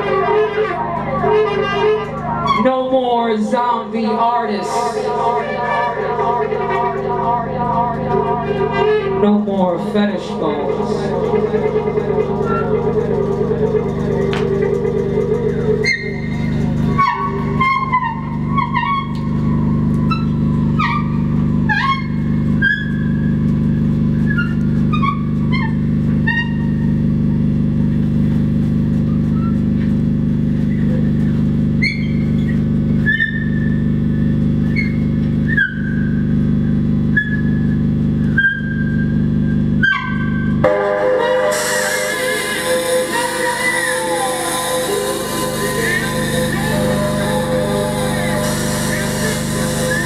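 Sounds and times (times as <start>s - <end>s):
tenor saxophone high notes: 0.0s - 22.8s, 40.0s - 50.0s
low electronic drone: 0.0s - 50.0s
dense electronic texture: 3.4s - 22.6s, 40.8s - 50.0s.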